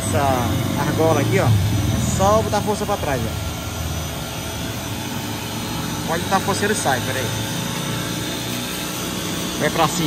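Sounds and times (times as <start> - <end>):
low hum: 0.0 - 9.6
mechanical drone and hiss: 0.0 - 10.0.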